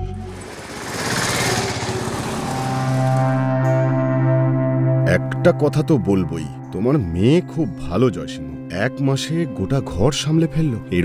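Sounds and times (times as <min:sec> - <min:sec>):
small engine running: 0:00.0 - 0:03.5.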